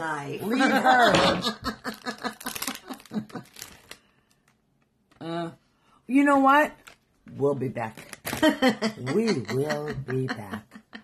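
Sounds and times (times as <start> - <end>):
foil wrapper crinkling and tearing: 1.9 - 4.6, 7.8 - 8.6.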